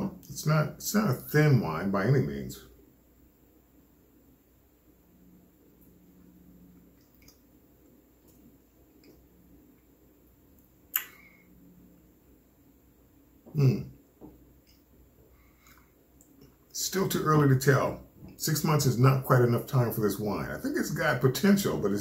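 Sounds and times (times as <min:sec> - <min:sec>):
faint low hum: 0:00.0 - 0:22.0
lip smack: 0:10.9 - 0:11.2.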